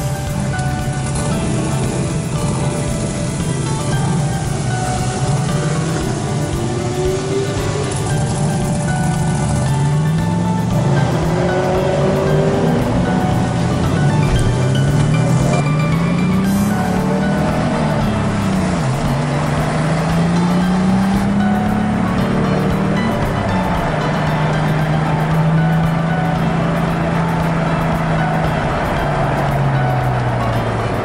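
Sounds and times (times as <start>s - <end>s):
background music: 0.0s - 31.0s
car engine accelerating: 0.0s - 31.0s.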